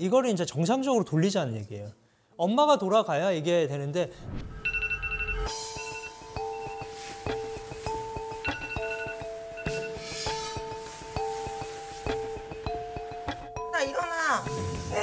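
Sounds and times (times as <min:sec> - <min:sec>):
steady held tone: 0:04.3 - 0:15.0
plinking melody of struck notes: 0:05.5 - 0:15.0.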